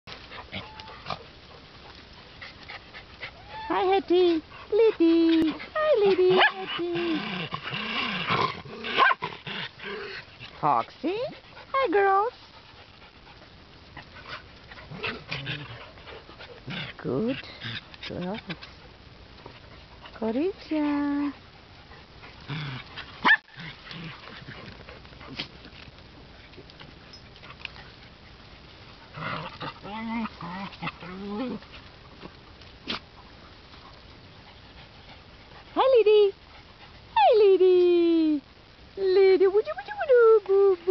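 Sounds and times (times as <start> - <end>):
dogs whining: 0.4 - 1.2
dog yelping: 0.5 - 1.2, 5.8 - 6.8, 8.9 - 9.2, 23.2 - 23.6
dogs growling: 5.4 - 11.8, 12.6 - 25.9, 27.3 - 35.7.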